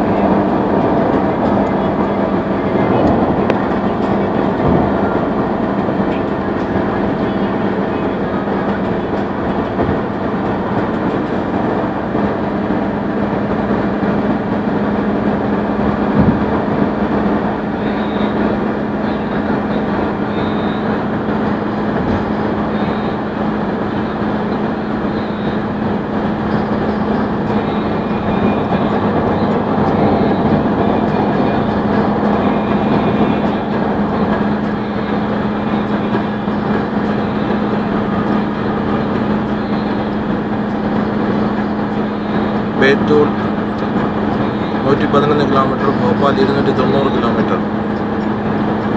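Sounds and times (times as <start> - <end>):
car engine drone: 0.0 - 48.9.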